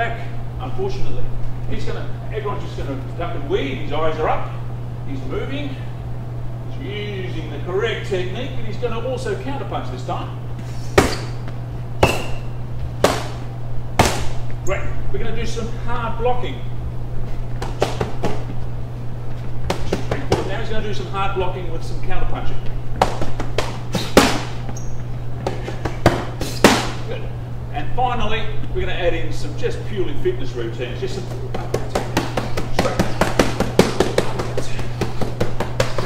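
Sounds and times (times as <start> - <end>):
steady low hum: 0.0 - 36.0
boxing gloves smacking focus pads: 11.0 - 11.4, 12.0 - 12.4, 13.0 - 13.4, 14.0 - 14.4, 17.6 - 18.6, 19.7 - 20.5, 23.0 - 24.6, 25.4 - 27.0, 31.5 - 36.0.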